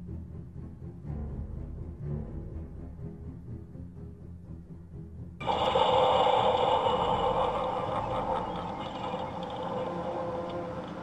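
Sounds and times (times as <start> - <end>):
quiet low music: 0.0 - 11.0
model train running: 5.4 - 11.0.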